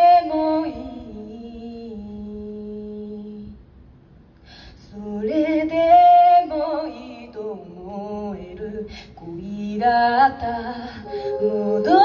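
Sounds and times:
a cappella group singing: 0.0 - 3.6, 4.8 - 12.0.

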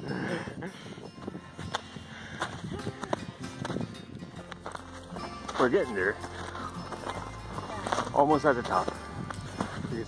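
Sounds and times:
background music: 0.0 - 10.0
footsteps crunching in snow: 1.6 - 10.0.

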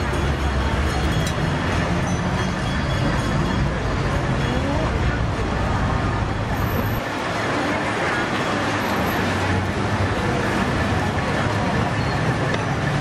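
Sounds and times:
people's voices: 0.0 - 13.0
road traffic: 0.0 - 13.0.

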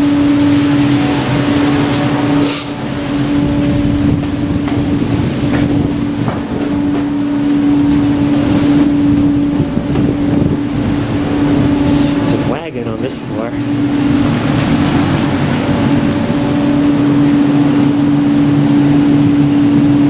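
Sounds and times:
noisy background wash: 0.0 - 20.0
steady mechanical hum: 0.0 - 20.0.

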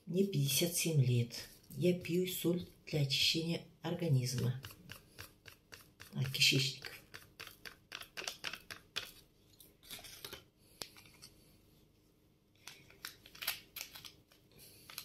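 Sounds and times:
paper sachet crinkling: 12.7 - 15.0.

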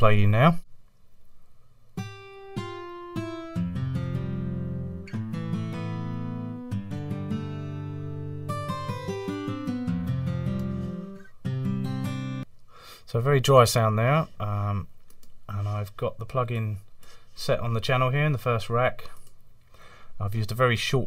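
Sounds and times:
dry electric guitar: 2.0 - 12.4.

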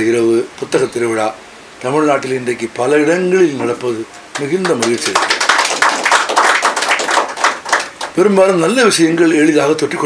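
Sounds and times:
audience applauding: 4.3 - 8.4.

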